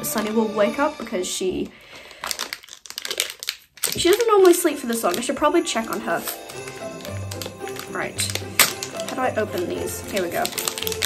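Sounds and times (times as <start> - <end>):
plastic packet crinkling: 1.6 - 11.0.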